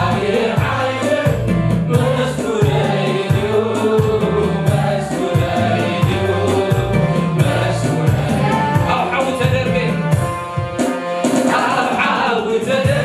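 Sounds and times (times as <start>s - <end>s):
choir singing: 0.0s - 9.2s, 11.4s - 13.0s
man singing lead: 0.0s - 9.5s, 11.5s - 13.0s
bass line and steady beat: 0.0s - 11.4s.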